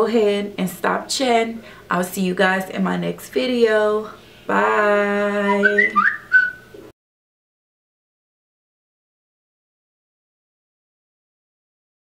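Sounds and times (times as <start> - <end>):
woman saying bye in high pitch: 4.5 - 6.1.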